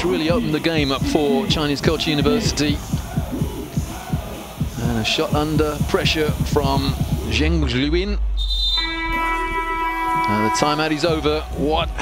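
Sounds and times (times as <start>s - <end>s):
arena buzzer tone: 8.4s - 11.6s.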